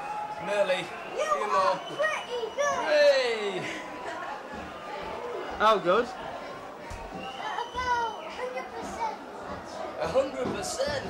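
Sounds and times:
boy's high-pitched voice: 2.0 - 2.9, 7.4 - 9.2.

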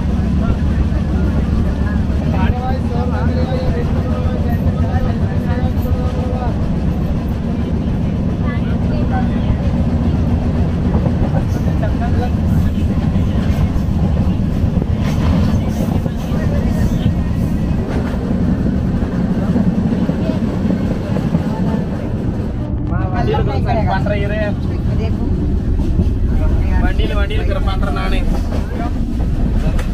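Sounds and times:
moving train rumble: 0.0 - 29.9
passengers' voices: 0.0 - 29.9.

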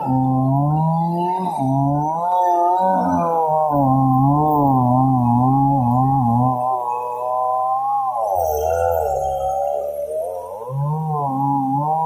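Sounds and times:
chainsaw cutting through log: 0.0 - 8.5, 10.6 - 12.0.

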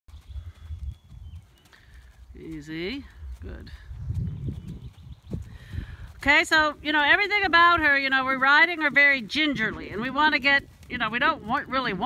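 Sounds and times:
hoofbeats on sand: 0.1 - 12.0.

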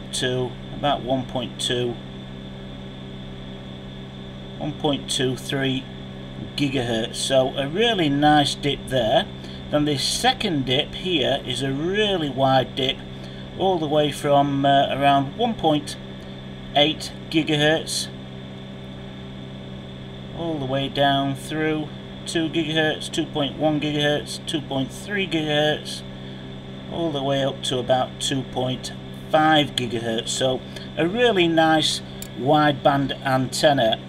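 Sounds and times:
electrical hum: 0.0 - 34.0
faint high-pitched whine: 0.0 - 34.0.

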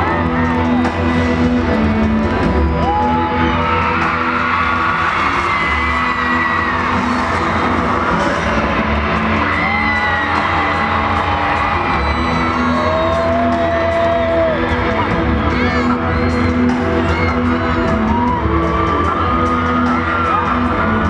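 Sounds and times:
crowd cheering and screaming: 0.0 - 21.0
music over sound system: 0.0 - 21.0.

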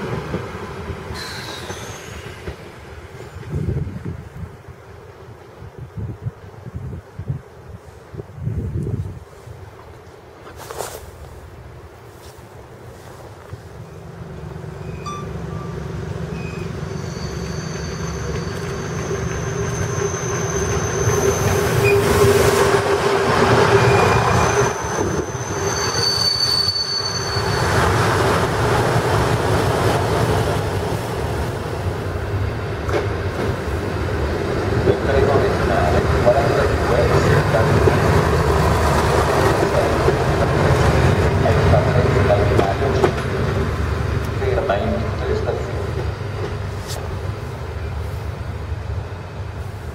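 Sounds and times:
high wheel squeal: 1.2 - 2.4, 14.8 - 22.6, 23.8 - 28.0
diesel railcar engine passing: 11.2 - 49.9.

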